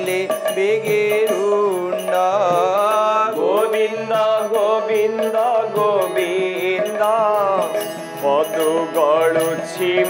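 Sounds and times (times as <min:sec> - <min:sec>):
harmonium drone: 0:00.0 - 0:10.0
man singing a chanted melody: 0:00.0 - 0:10.0.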